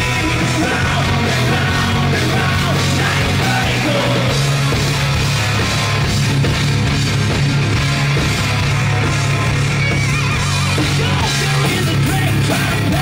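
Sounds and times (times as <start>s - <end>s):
bass guitar: 0.0s - 13.0s
distorted electric guitars: 0.0s - 13.0s
drum kit: 0.0s - 13.0s.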